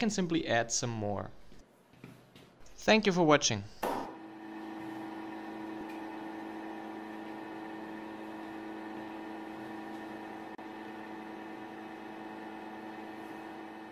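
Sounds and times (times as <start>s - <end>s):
drill press humming: 4.2s - 13.9s.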